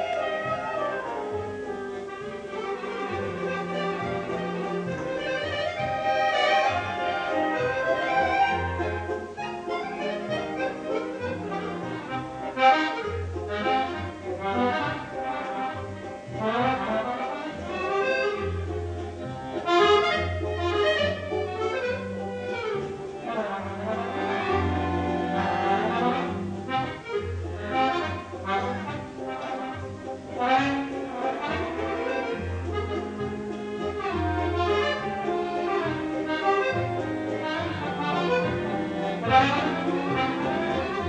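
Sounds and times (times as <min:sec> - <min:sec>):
accordion melody: 0:00.0 - 0:41.0
orchestra accompaniment: 0:00.0 - 0:41.0
steady bass: 0:00.0 - 0:41.0.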